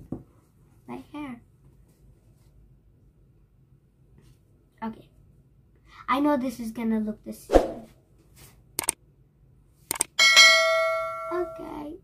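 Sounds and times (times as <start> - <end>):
bright bell ding: 10.2 - 11.7.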